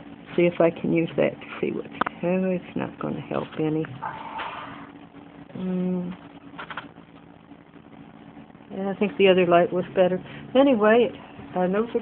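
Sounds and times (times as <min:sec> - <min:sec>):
faint steady hum: 0:00.0 - 0:12.0
woman humming: 0:05.5 - 0:06.2.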